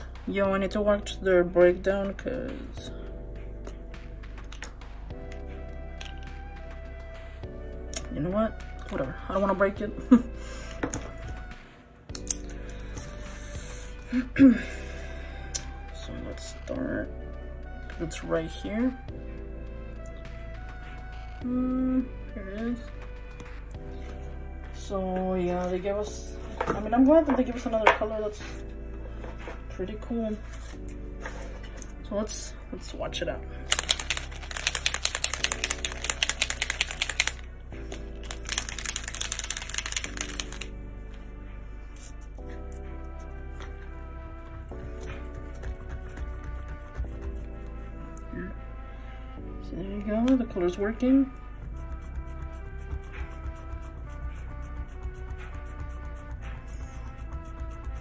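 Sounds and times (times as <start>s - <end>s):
light background music: 0.0s - 58.0s
paint marker ball rattling: 33.7s - 40.7s.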